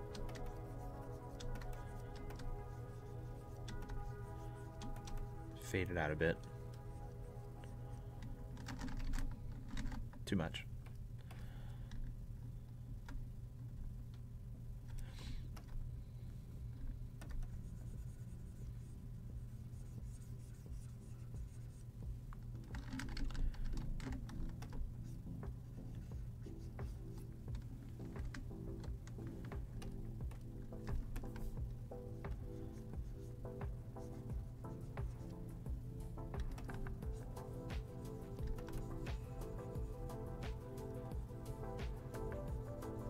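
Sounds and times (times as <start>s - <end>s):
quiet background music: 0.0s - 43.0s
computer keyboard clicks: 8.6s - 10.1s, 22.6s - 24.8s.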